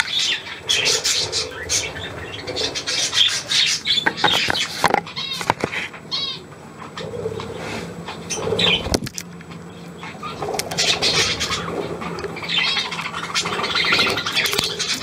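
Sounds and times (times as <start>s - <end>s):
budgerigars chirping and warbling: 0.0s - 9.0s, 9.7s - 15.0s.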